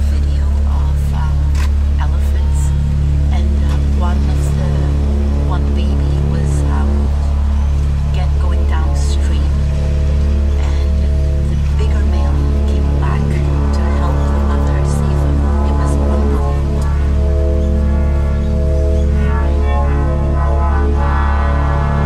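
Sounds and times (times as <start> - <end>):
deep bass drone: 0.0 - 22.0
held synth notes: 0.0 - 22.0
layered voice recordings: 0.0 - 22.0.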